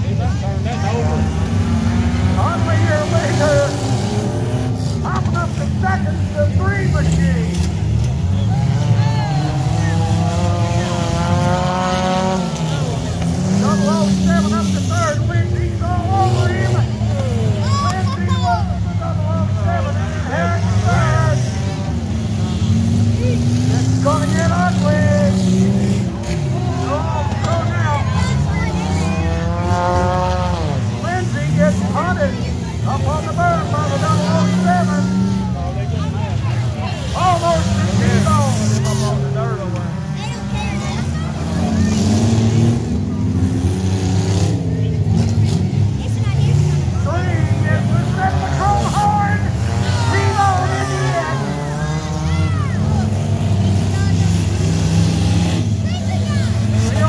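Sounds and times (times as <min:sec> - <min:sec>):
race car engines revving: 0:00.0 - 0:57.0.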